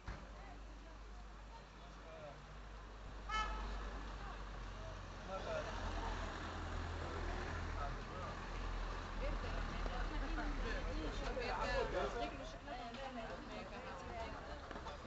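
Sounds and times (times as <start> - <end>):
people chattering: 0.0 - 15.0
street noise rumble: 0.0 - 15.0
car horn toot: 3.3 - 3.7.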